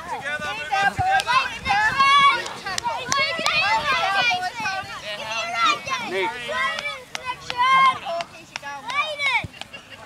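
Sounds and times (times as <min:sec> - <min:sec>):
children calling and shouting: 0:00.0 - 0:10.0.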